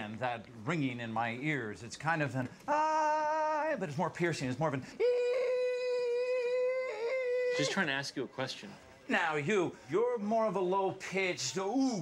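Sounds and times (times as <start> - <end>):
shrill high-pitched voice: 7.4 - 7.9.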